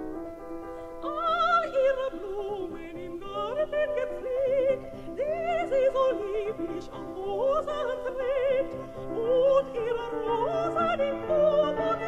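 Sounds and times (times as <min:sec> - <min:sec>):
piano accompaniment: 0:00.0 - 0:12.0
soprano singing with vibrato: 0:00.8 - 0:12.0.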